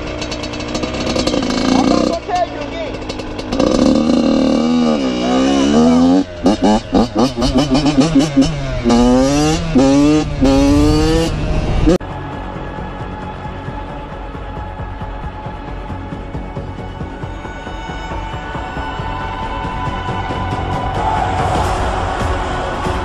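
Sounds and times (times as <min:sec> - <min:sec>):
dirt bike engine revving: 0:00.0 - 0:12.0
quiet music: 0:00.0 - 0:23.0.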